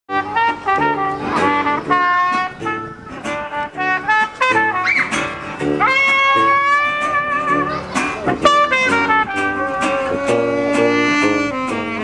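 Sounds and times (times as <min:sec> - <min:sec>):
guitar: 0:00.1 - 0:12.0
trumpet phrases: 0:00.1 - 0:12.0
tuba bass: 0:00.1 - 0:12.0.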